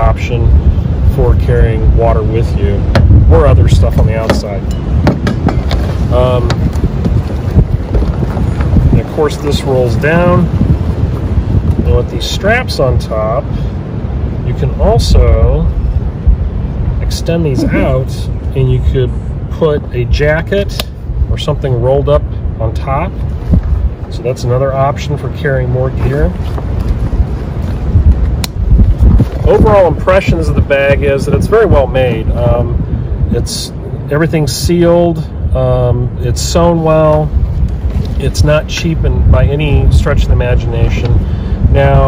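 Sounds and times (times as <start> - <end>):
wind buffeting a microphone: 0.0 - 42.0.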